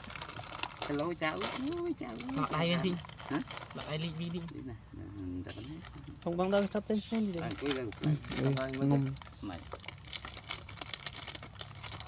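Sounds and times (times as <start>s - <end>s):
plastic snack packet crinkling: 0.0s - 4.5s, 5.9s - 12.0s.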